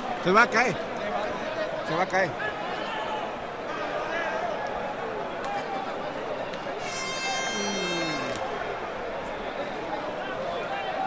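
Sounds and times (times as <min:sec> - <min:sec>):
horn blast: 0:06.8 - 0:08.5
crowd shouting: 0:06.8 - 0:11.0.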